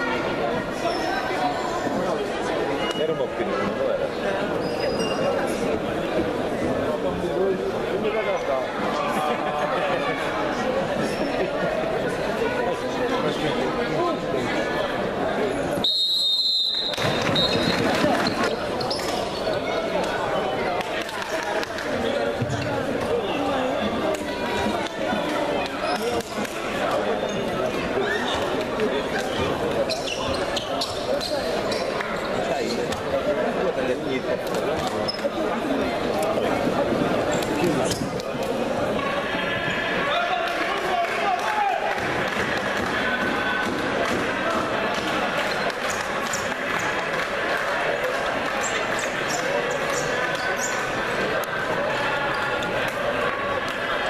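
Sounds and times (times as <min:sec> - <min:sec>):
voices chattering: 0:00.0 - 0:54.0
referee's whistle: 0:15.8 - 0:17.8.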